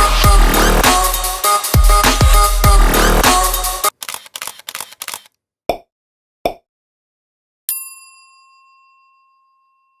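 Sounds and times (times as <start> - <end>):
bell ding: 7.7 - 10.0.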